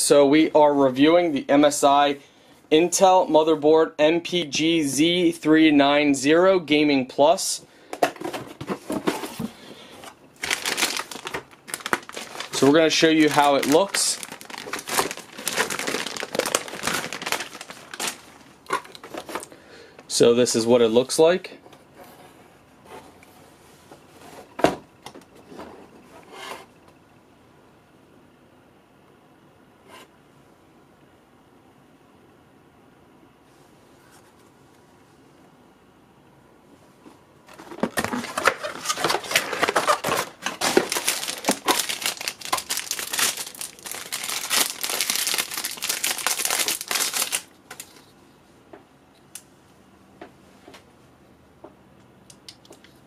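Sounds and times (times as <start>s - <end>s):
plastic bag crinkling: 8.9s - 19.5s, 37.5s - 48.0s.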